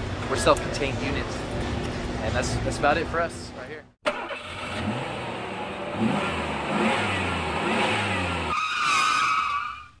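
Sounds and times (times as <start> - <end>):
high tire screech: 7.8 - 10.0.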